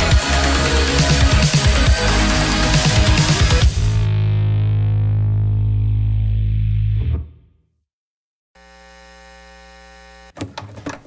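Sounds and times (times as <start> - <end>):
electronic dance music: 0.0 - 4.1
electronic buzzing hum: 8.6 - 10.4.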